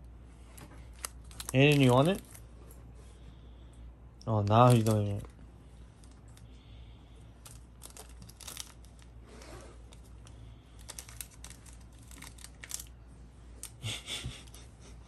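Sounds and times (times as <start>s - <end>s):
candy wrapper crinkling: 0.8s - 2.5s, 4.4s - 5.3s, 7.4s - 9.2s, 9.8s - 13.0s.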